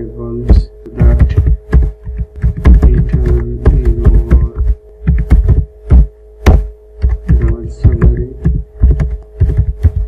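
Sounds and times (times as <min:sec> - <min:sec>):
steady electrical hum: 0:00.0 - 0:10.0
computer keyboard typing: 0:01.0 - 0:06.0, 0:07.0 - 0:10.0.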